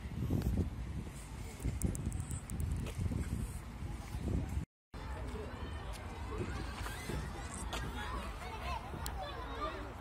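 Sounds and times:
children and adults talking: 0:03.8 - 0:10.0.

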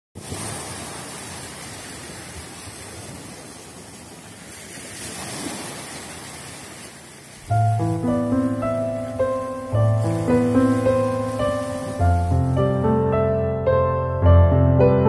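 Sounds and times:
sea surf washing onto shore: 0:00.2 - 0:13.3
music with sustained keyboard notes: 0:07.5 - 0:15.0.

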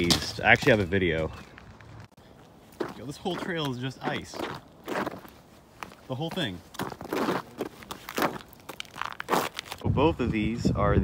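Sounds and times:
footsteps crunching on icy snow: 0:00.0 - 0:09.8.

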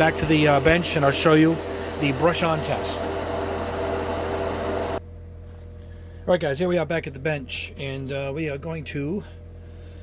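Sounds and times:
exhaust fan humming: 0:00.0 - 0:10.0.

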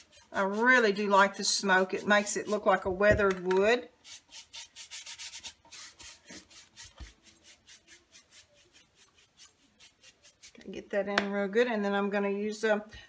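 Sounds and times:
brush scrubbing on wood: 0:00.0 - 0:02.9, 0:04.0 - 0:10.8.

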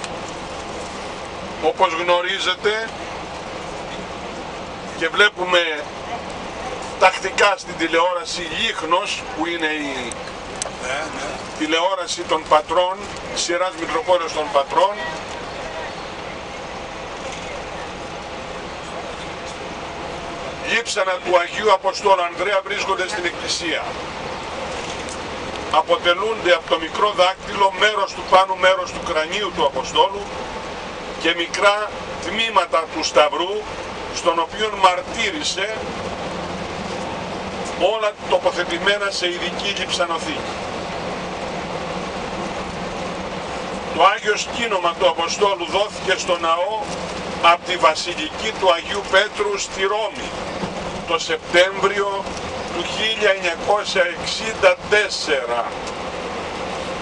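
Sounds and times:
bus engine and road noise: 0:00.0 - 0:57.0.

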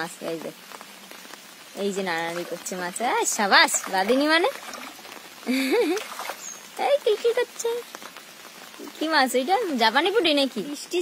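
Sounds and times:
rain falling on pond water: 0:00.0 - 0:11.0.

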